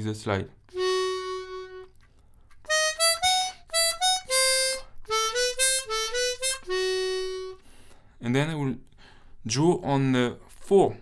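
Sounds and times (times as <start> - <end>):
person speaking: 0.0 - 1.8, 8.2 - 11.0
harmonica jazz phrase: 0.7 - 2.0, 2.6 - 7.8.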